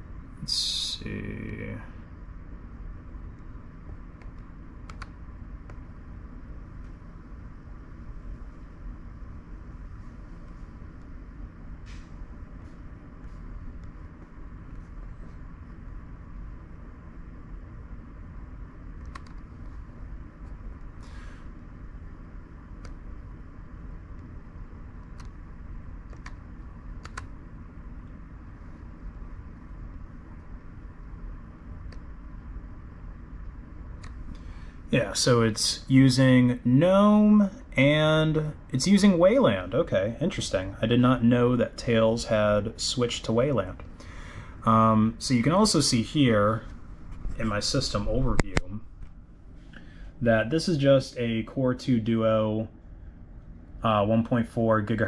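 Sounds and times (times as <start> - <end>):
noisy failing hard drive: 0.0 - 49.2
laptop humming and whirring: 0.0 - 55.0
faint mouse clicks: 3.3 - 5.8, 19.0 - 19.8, 22.8 - 23.0, 25.0 - 25.4, 27.0 - 27.3, 31.9 - 32.1.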